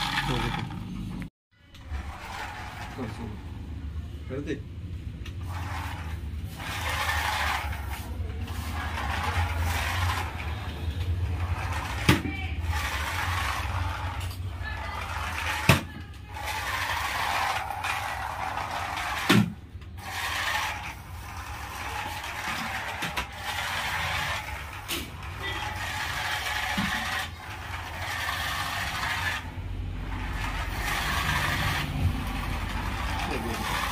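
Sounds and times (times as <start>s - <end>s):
toy truck motor whirring: 0.0s - 3.4s, 5.2s - 33.9s.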